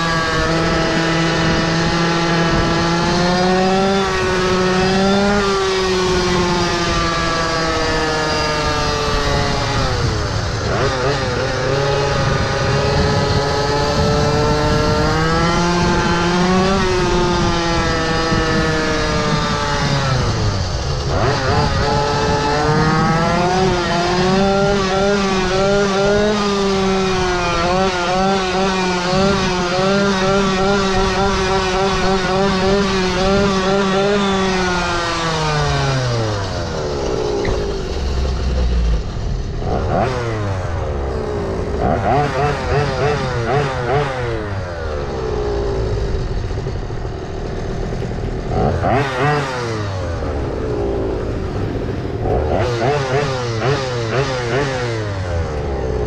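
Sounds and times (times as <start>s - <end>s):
two-stroke scooter engine revving: 0.0s - 56.0s.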